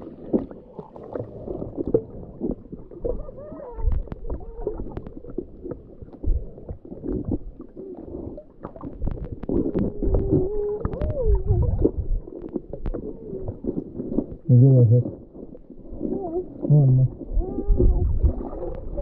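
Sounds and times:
muffled underwater rumbling: 0.0s - 19.0s
sharp clicks underwater: 0.1s - 14.5s.

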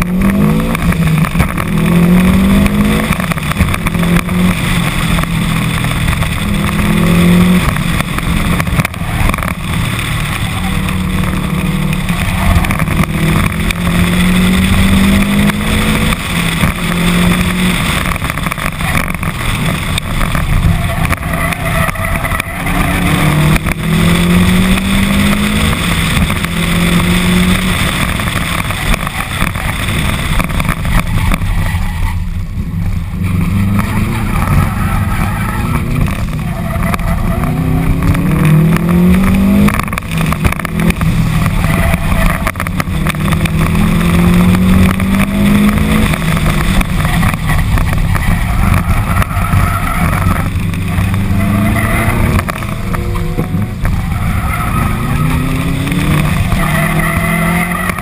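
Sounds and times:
car engine accelerating hard: 0.0s - 58.0s
wind and road noise: 0.0s - 58.0s.

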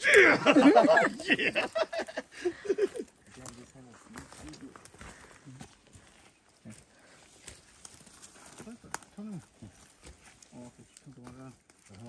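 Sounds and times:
men's voices murmuring: 0.0s - 7.6s, 8.3s - 12.0s.

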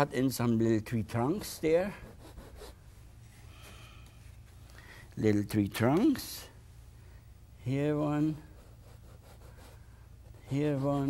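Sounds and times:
low room hum: 0.0s - 11.0s
paint tool scraping canvas: 8.5s - 11.0s.

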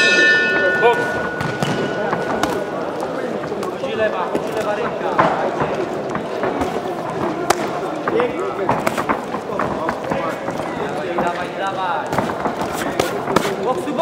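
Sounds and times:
punches thudding: 0.0s - 3.0s
boxing ring bell: 0.0s - 3.6s.

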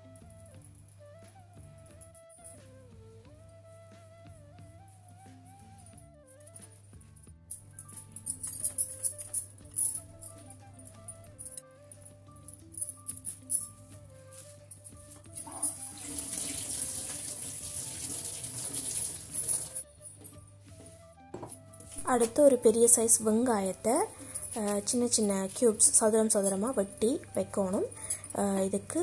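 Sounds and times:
background music: 0.0s - 29.0s
bangles clinking: 6.2s - 16.9s, 18.7s - 29.0s.

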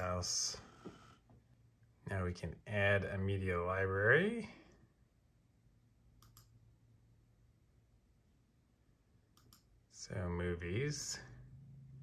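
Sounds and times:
computer mouse clicks: 6.2s - 6.6s, 9.3s - 9.7s.

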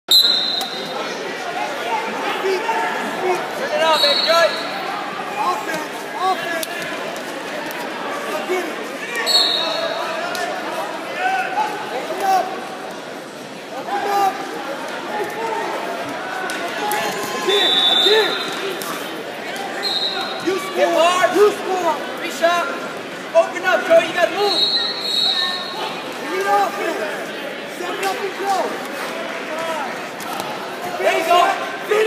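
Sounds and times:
background chatter: 0.1s - 32.0s.

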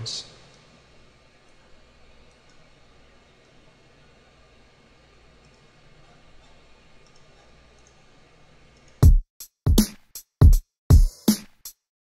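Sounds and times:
steady hum and hiss: 0.0s - 9.0s
computer mouse clicks: 7.0s - 8.0s.

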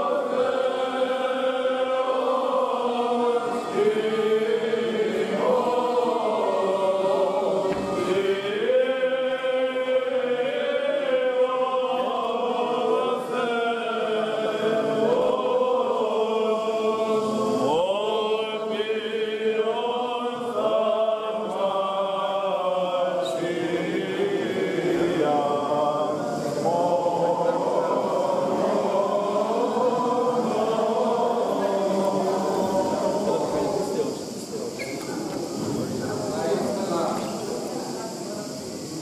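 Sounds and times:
several voices chanting: 0.0s - 39.0s.

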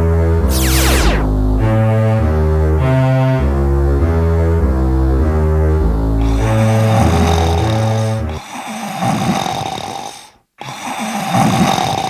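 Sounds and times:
cartoon character snoring: 6.4s - 12.0s.

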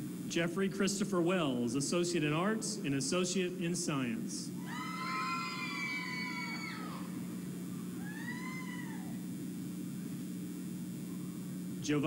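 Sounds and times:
shrill cheering whoops: 4.6s - 7.2s, 7.9s - 9.3s.

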